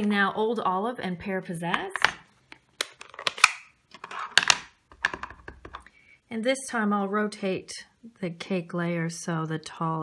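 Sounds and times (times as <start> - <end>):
plastic cases clacking: 1.8 - 5.9.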